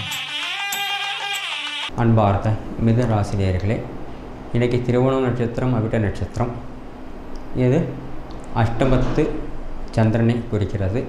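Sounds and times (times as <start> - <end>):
musical jingle: 0.0 - 1.9.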